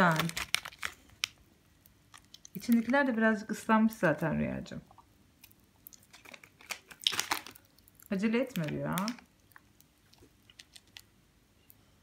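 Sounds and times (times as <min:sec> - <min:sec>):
popping candy crackling: 0:00.0 - 0:04.3, 0:05.4 - 0:11.1.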